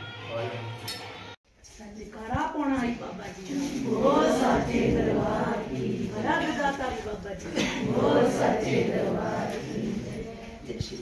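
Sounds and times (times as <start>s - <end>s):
music: 0.0s - 1.4s
voices: 1.7s - 11.0s.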